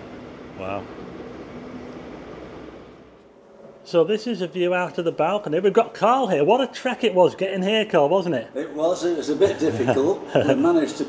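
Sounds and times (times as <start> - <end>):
city traffic: 0.0 - 4.2
wind: 0.0 - 11.0
man speaking: 0.6 - 0.9.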